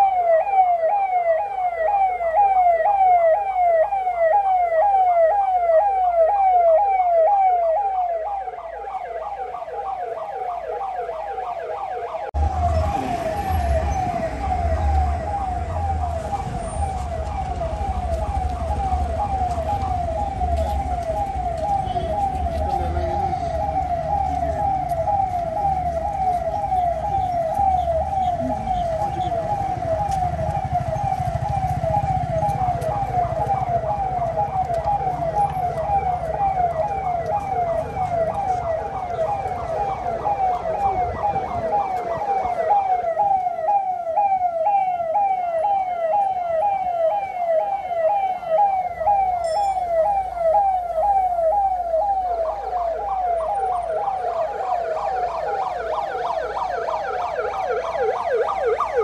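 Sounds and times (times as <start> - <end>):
police siren: 0.0 - 59.0
second siren: 0.0 - 59.0
vehicle engine rumble: 12.4 - 42.6.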